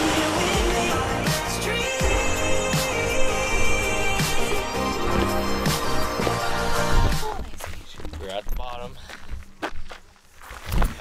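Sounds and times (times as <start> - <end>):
footsteps on gravel: 3.5 - 11.0.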